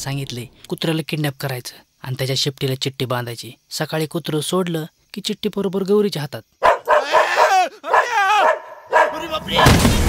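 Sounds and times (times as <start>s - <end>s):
dog whining: 6.6s - 9.2s.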